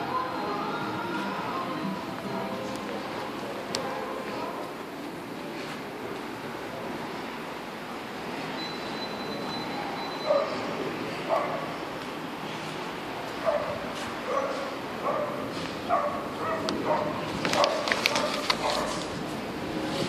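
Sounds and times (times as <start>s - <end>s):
background noise: 0.0s - 20.0s
dog yapping: 14.3s - 19.0s.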